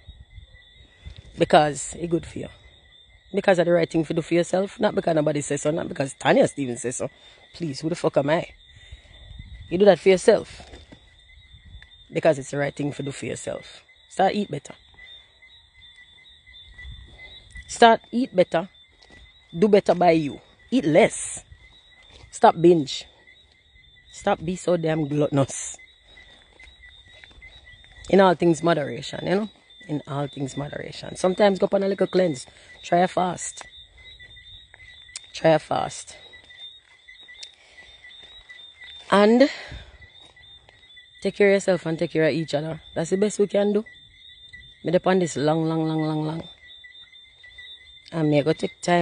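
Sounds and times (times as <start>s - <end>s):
crickets chirping: 0.0s - 49.0s.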